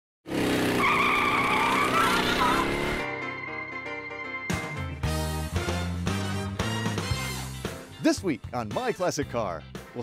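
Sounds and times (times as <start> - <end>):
tires squealing: 0.6 - 3.0.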